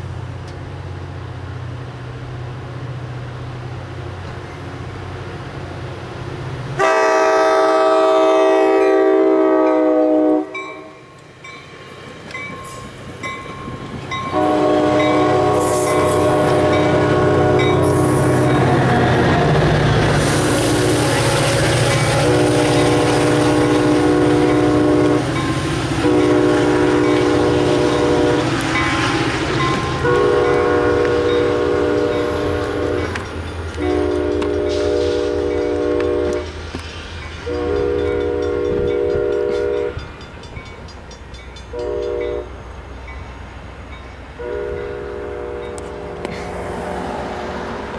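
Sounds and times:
rail cars rumbling past: 0.0 - 47.9
train horn blasts: 6.8 - 11.2, 14.2 - 36.6, 37.4 - 40.1, 41.7 - 42.6, 44.4 - 46.6.

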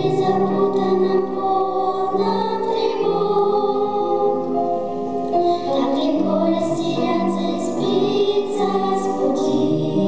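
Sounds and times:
girls singing into microphones: 0.0 - 4.6, 5.3 - 10.0.

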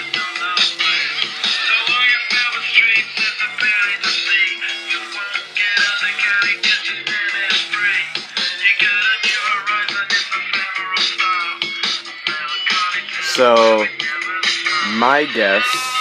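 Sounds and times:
pop song from small speaker: 0.0 - 16.0.

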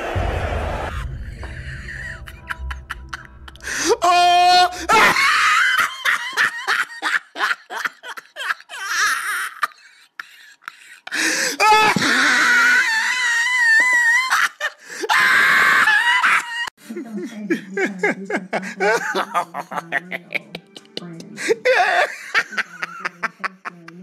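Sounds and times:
person laughing hysterically: 1.0 - 16.7, 18.1 - 20.9, 21.6 - 24.0
person wailing: 3.7 - 6.7, 11.5 - 14.4.

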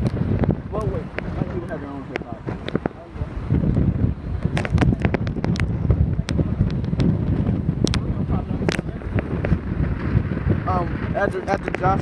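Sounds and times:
sharp wind pops: 0.0 - 12.0
wind buffeting microphone: 0.0 - 12.0.

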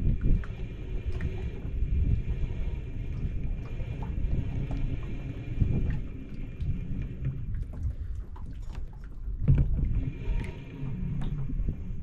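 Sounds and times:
wind rumble: 0.0 - 12.0.

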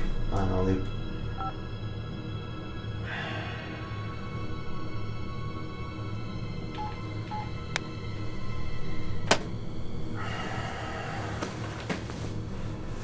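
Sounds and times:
dark tense film score: 0.0 - 13.0.

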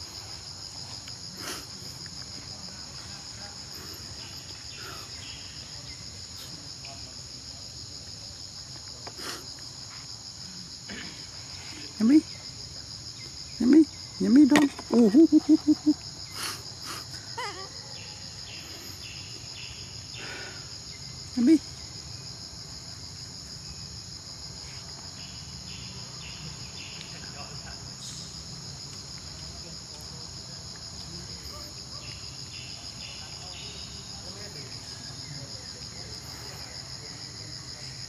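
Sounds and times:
insects buzzing: 0.0 - 38.0.

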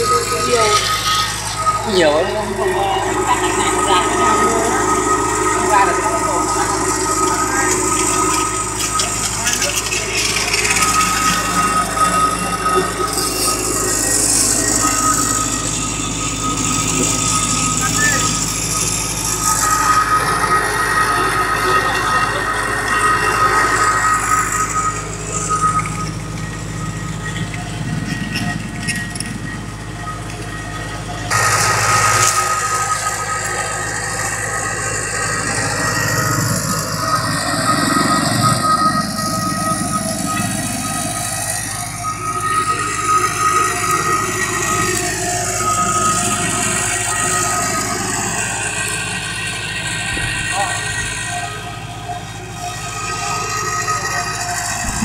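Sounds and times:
people talking: 0.0 - 26.8, 30.4 - 55.0
machinery whining: 0.0 - 55.0.

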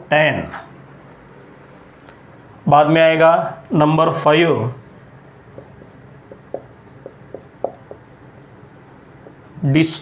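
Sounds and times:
marker writing on whiteboard: 4.7 - 10.0.

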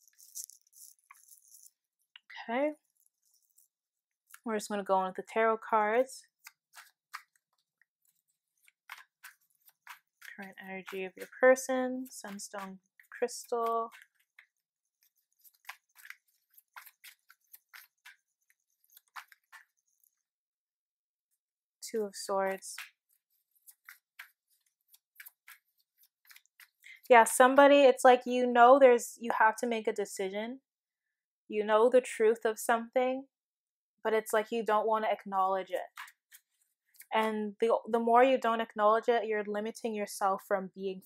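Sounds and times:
faint small clicks and ticks: 0.0 - 4.5.

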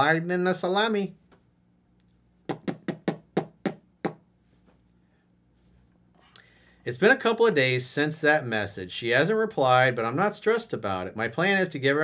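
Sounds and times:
sharp knocks: 2.5 - 4.2.

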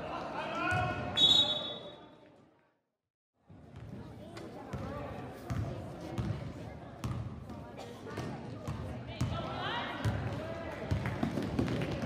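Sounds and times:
voices of players and spectators: 0.0 - 2.8, 3.4 - 12.0
basketball bouncing on gym floor: 7.0 - 7.3.

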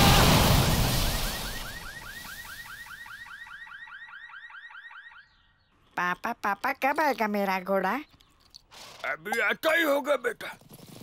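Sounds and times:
loud crash: 0.0 - 2.0.

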